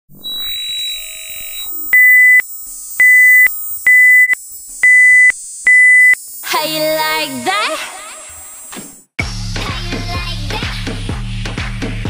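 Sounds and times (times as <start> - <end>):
short electronic beeps: 0.2 - 6.2.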